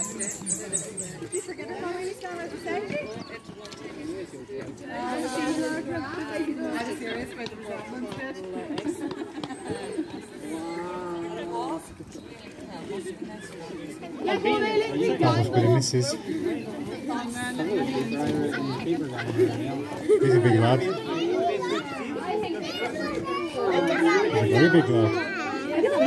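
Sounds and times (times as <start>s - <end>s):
people chattering: 0.0s - 26.0s
people talking and calling: 0.0s - 26.0s.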